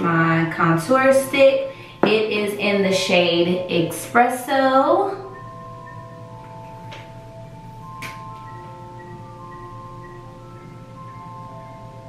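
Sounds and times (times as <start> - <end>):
soft bell-like background music: 0.0 - 12.0.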